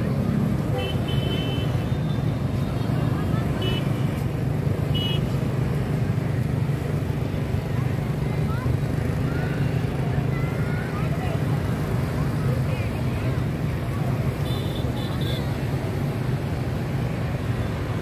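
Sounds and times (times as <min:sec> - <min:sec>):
street traffic passing: 0:00.0 - 0:18.0.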